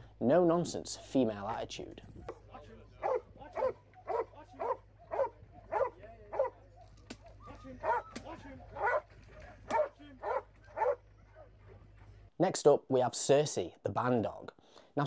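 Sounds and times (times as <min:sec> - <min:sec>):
dog barking: 0:03.0 - 0:09.1, 0:09.7 - 0:11.0.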